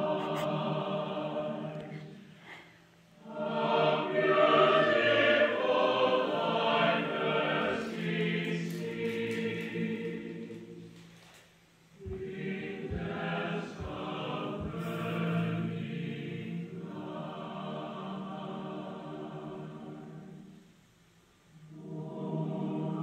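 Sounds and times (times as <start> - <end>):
choir singing: 0.0 - 2.3, 3.2 - 11.2, 12.0 - 20.6, 21.6 - 23.0.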